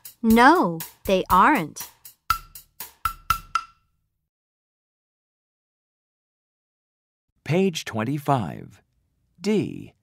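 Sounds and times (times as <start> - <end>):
percussion hits with ring: 2.3 - 3.8.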